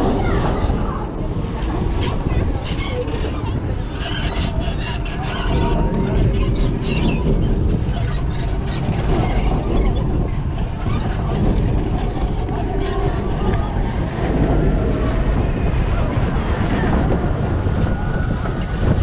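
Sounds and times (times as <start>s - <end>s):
roller coaster wheels rumbling: 0.0s - 19.0s
wind rushing over microphone: 0.0s - 19.0s.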